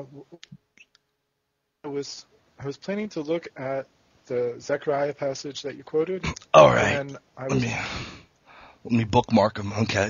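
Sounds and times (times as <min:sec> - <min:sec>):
person saying uh: 0:06.2 - 0:08.2.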